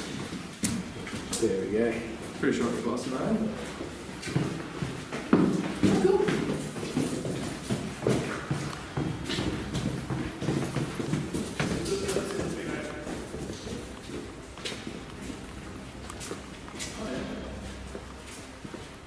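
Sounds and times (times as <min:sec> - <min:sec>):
footsteps on hard floor: 0:00.0 - 0:19.0
low muffled voices: 0:11.4 - 0:14.7.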